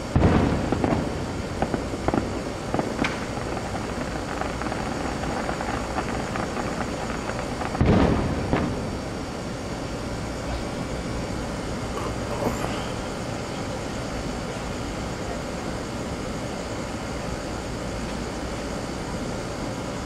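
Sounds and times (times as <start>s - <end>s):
distant fireworks booms: 0.0s - 15.3s
steady background rumble: 0.0s - 20.0s.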